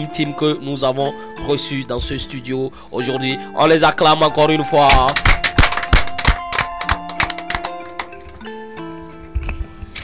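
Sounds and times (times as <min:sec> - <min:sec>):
background music with held notes: 0:00.0 - 0:10.0
people clapping: 0:04.9 - 0:08.3.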